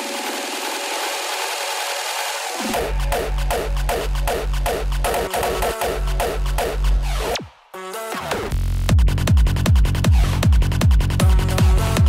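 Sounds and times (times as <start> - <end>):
fast rhythmic low pattern: 0.0 - 7.4, 8.2 - 12.0
electronic dance music breakdown: 0.0 - 12.0.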